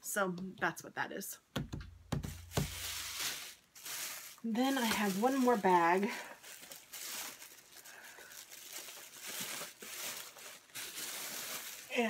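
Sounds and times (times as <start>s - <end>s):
shopping bag rustling: 2.3s - 12.0s.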